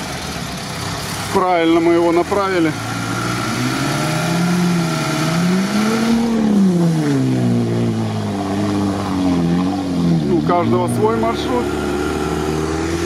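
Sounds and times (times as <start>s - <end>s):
truck engine revving: 0.0s - 13.0s.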